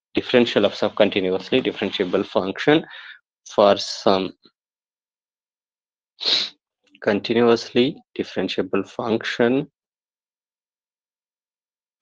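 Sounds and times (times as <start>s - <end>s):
man's sharp breath: 2.9s - 3.2s.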